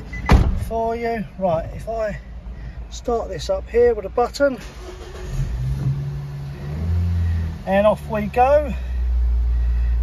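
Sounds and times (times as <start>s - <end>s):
car engine starting and running: 0.0s - 10.0s.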